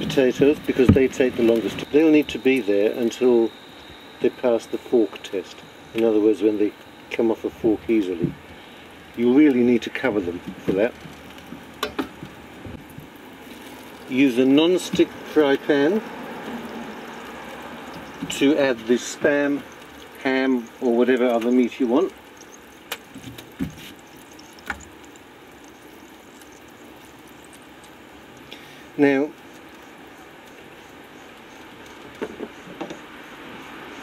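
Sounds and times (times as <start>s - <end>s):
potatoes boiling in water: 0.0s - 34.0s.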